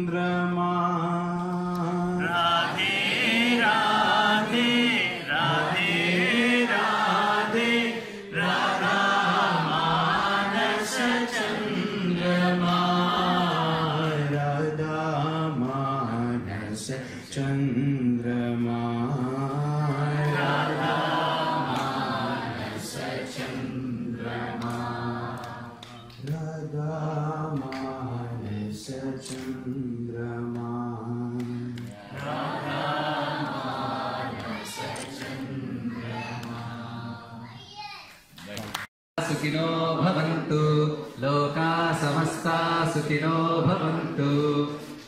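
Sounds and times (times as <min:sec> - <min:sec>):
man chanting into a microphone: 0:12.0 - 0:20.3, 0:39.2 - 0:45.0.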